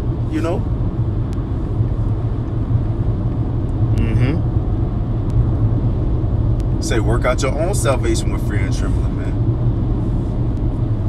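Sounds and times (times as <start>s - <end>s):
steady low rumble: 0.0s - 11.0s
voice murmuring: 3.9s - 4.4s.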